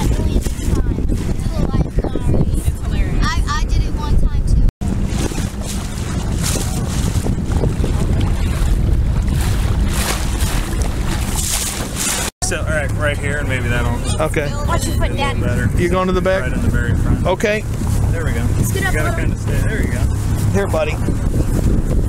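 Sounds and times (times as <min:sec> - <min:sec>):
motorboat engine running: 0:00.0 - 0:22.0
wind buffeting microphone: 0:00.0 - 0:22.0.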